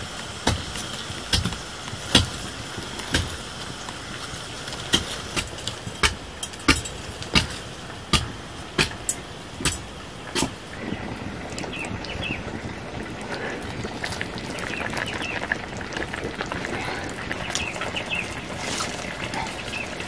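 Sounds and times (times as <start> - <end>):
fire cracking: 0.0 - 20.0
wood fire hissing: 0.0 - 20.0.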